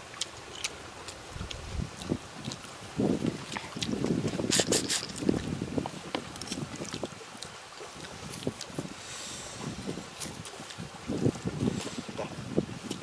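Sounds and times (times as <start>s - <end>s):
man chewing with lip smacks: 0.1s - 5.5s
wind rumble on microphone: 1.1s - 13.0s.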